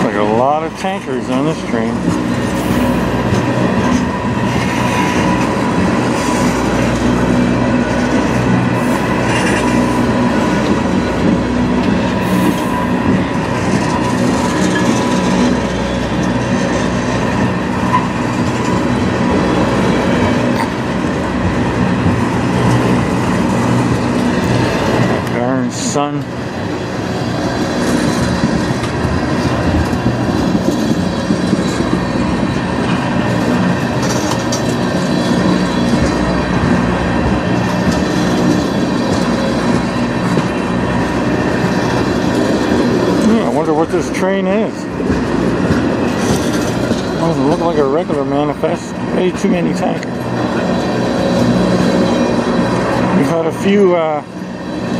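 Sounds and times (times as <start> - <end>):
steel wheels rumbling on rails: 0.0 - 54.9.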